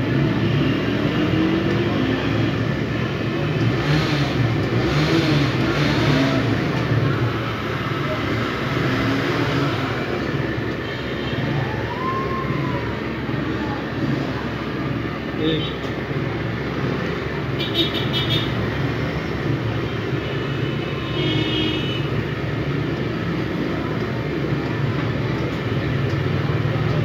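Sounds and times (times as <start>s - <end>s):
vehicle engines passing: 0.0s - 27.0s
faint voices: 11.4s - 16.4s.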